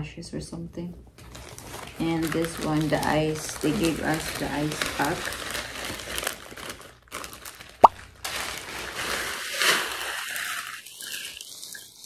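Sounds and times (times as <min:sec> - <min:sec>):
plastic ice packs crinkling: 0:01.2 - 0:12.0.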